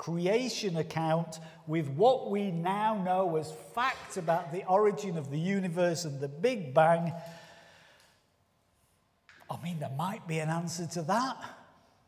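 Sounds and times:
man speaking: 0:00.0 - 0:07.3, 0:09.3 - 0:11.8.

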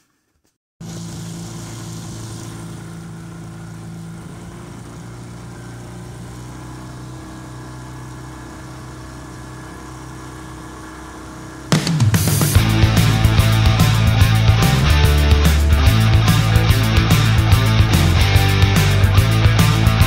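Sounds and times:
outboard motor running: 0:00.8 - 0:20.0
loud rock music: 0:11.7 - 0:20.0.

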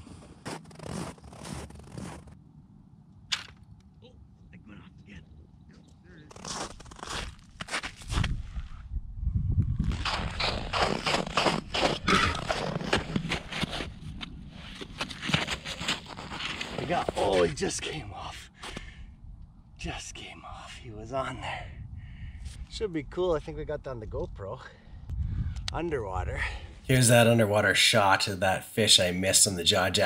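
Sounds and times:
crunching and scraping in snow: 0:00.0 - 0:02.4, 0:06.2 - 0:08.9, 0:09.8 - 0:18.0.

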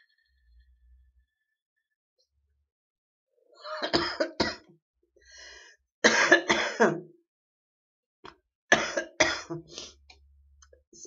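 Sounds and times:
woman coughing: 0:03.7 - 0:04.7, 0:06.0 - 0:07.1, 0:08.7 - 0:09.7
woman breathing: 0:05.2 - 0:05.8.

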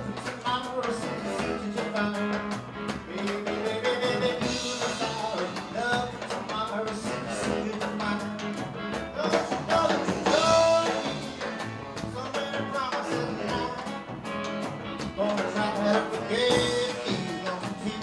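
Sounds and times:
live blues band: 0:00.0 - 0:18.0
saxophone melody: 0:00.1 - 0:18.0.

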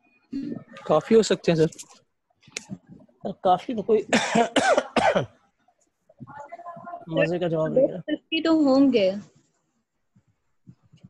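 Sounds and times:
person coughing: 0:04.1 - 0:05.3.

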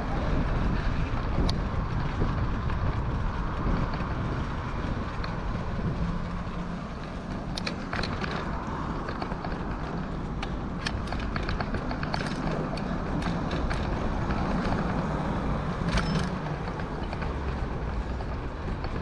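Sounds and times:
bicycle rolling over pavement: 0:00.0 - 0:19.0
bike rattles and clicks: 0:00.0 - 0:19.0.

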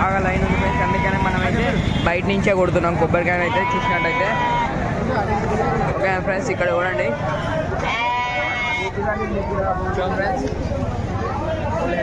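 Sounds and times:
crowd chatter: 0:00.0 - 0:12.0
goat bleating: 0:03.4 - 0:04.7, 0:07.8 - 0:09.0.

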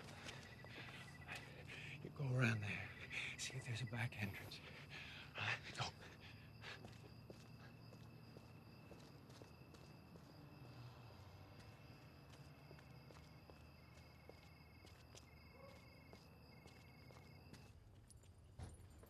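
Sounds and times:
high-pitched insect trilling: 0:00.0 - 0:10.8.

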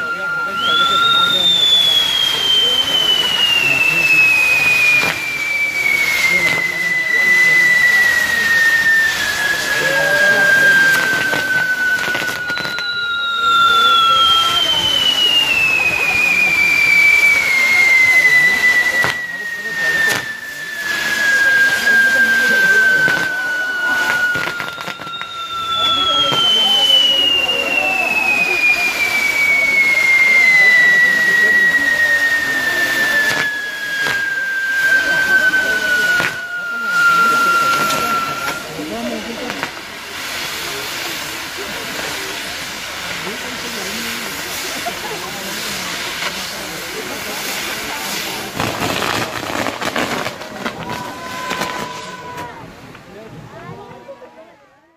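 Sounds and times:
firework cracks: 0:00.0 - 0:53.1
firework spark fountains hissing: 0:00.0 - 0:54.4
falling firework whistles: 0:00.0 - 0:54.6.

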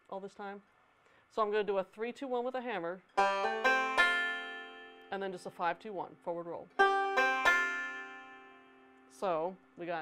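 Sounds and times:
banjo fingerpicked: 0:03.1 - 0:05.8, 0:06.8 - 0:09.3.

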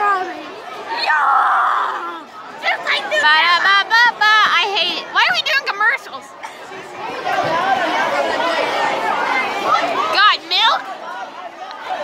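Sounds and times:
children talking at once: 0:00.0 - 0:04.2, 0:04.8 - 0:12.0.

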